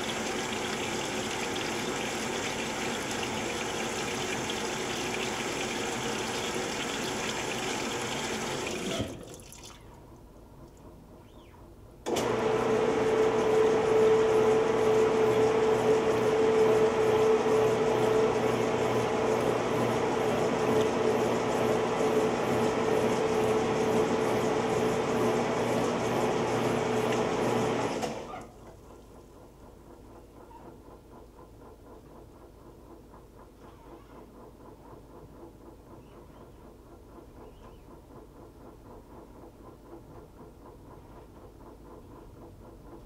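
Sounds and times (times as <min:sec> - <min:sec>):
washing machine agitating: 0:00.0 - 0:11.1, 0:12.1 - 0:43.0.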